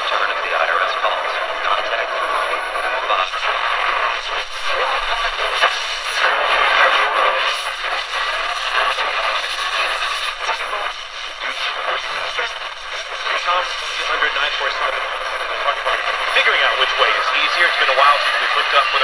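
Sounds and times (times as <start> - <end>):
radio static: 0.0 - 19.0
weak broadcast voice: 0.0 - 19.0.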